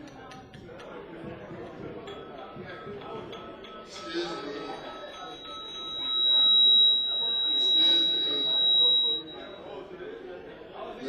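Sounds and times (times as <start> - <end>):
murmur of voices: 0.0 - 11.0
steady high-pitched tone: 2.1 - 10.0.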